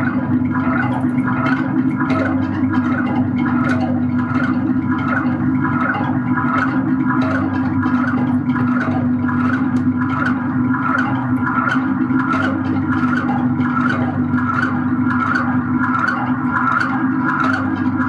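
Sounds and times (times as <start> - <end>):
low synthesizer drone: 0.0 - 18.0.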